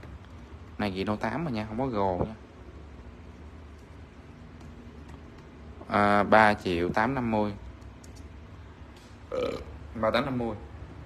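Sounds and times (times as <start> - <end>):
man mumbling: 9.3 - 9.8.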